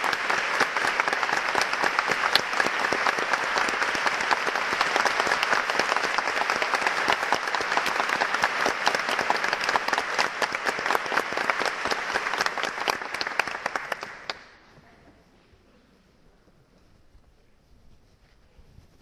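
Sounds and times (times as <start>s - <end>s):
audience applauding: 0.0s - 14.6s.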